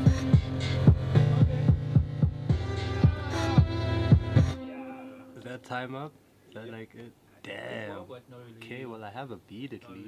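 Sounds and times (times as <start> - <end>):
electronic beat with bass: 0.0 - 4.6.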